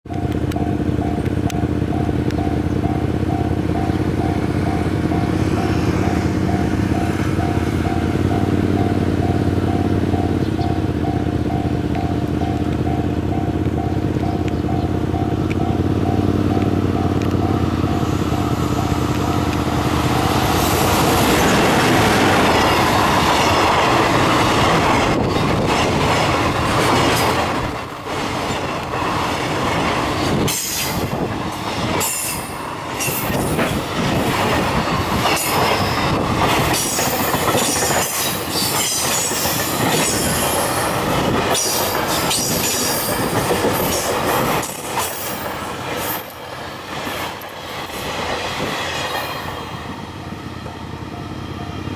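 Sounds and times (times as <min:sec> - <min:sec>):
electric locomotive hum: 0:00.1 - 0:51.9
rush of train wheels: 0:15.2 - 0:51.9.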